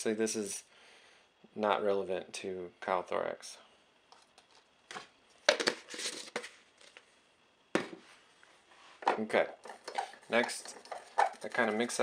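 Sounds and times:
plastic tub rustling and clicking: 0:09.1 - 0:12.0.

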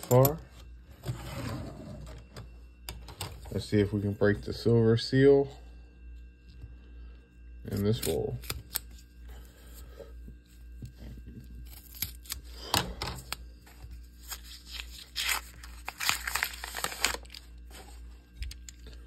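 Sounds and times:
paper wrapper tearing and crinkling: 0:14.1 - 0:18.0.

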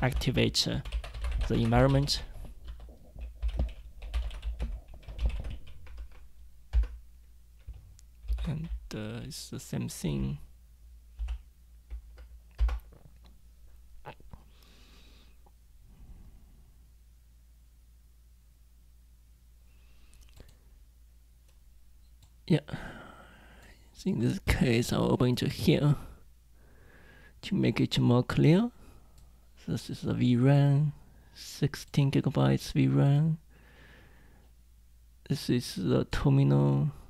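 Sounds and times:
man speaking: 0:00.0 - 0:02.4, 0:08.3 - 0:10.5
faint low hum: 0:00.0 - 0:37.0
computer keyboard typing: 0:00.1 - 0:07.0, 0:07.6 - 0:08.9, 0:11.2 - 0:13.0.

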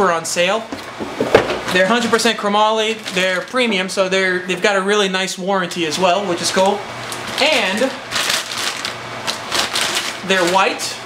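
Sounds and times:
plastic bag crinkling and rustling: 0:01.7 - 0:04.8, 0:05.9 - 0:11.0.

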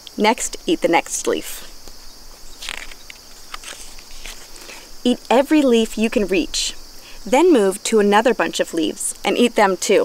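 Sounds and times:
insects chirring: 0:00.0 - 0:10.0
book rustling and tapping: 0:01.8 - 0:04.8
page turning: 0:02.3 - 0:04.9.

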